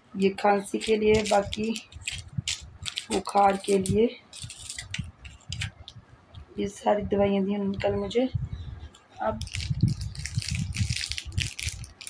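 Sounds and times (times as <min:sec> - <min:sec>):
rattling and rustling handling: 0:00.6 - 0:06.0, 0:09.4 - 0:12.0.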